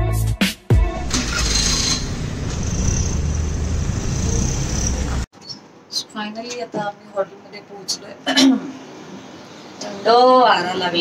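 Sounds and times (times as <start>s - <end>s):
road traffic rumble: 1.0s - 5.8s.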